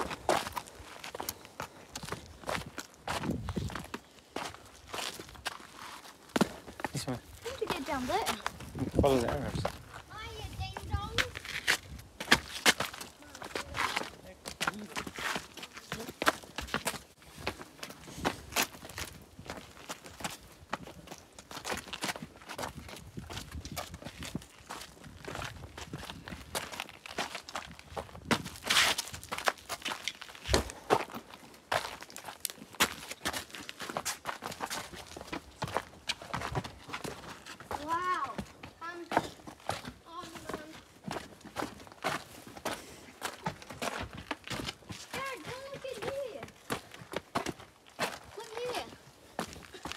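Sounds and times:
footsteps on gritty dirt trail: 0:00.0 - 0:49.9.

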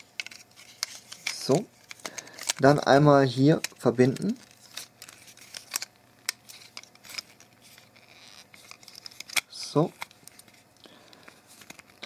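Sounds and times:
plastic parts clicking: 0:00.0 - 0:02.9, 0:03.5 - 0:10.6.

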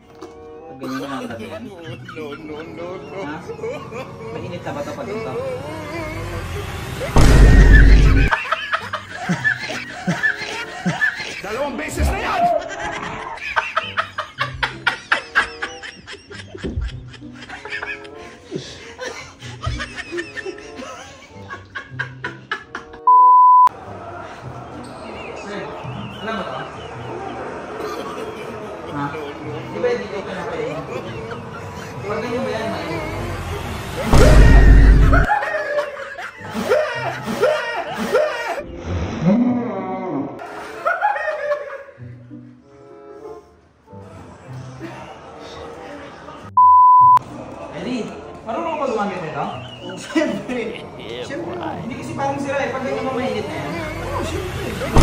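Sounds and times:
people snickering: 0:05.2 - 0:23.1, 0:24.0 - 0:29.8, 0:32.8 - 0:38.6
person laughing: 0:07.1 - 0:11.4
loud low rumble: 0:07.2 - 0:08.3.

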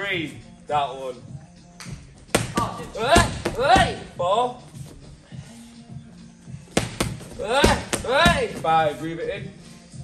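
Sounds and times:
strikes smacking a padded pad: 0:06.7 - 0:08.6.

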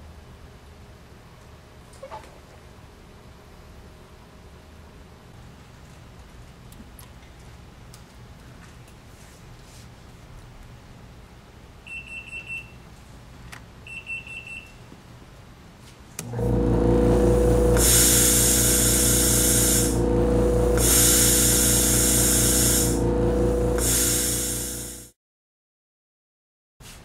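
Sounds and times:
air compressor humming: 0:16.2 - 0:25.1
air hissing: 0:16.2 - 0:25.1
machine beeping: 0:16.2 - 0:25.1.

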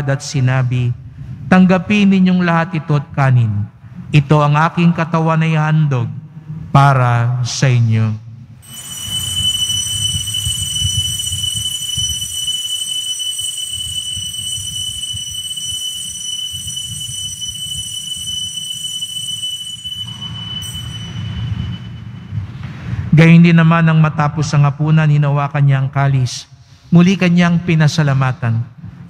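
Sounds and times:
bells ringing: 0:08.6 - 0:22.6
low rumble: 0:20.0 - 0:23.7.

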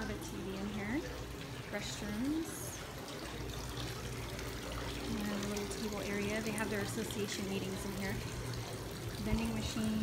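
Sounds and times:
water trickling into stone basin: 0:00.0 - 0:10.0.

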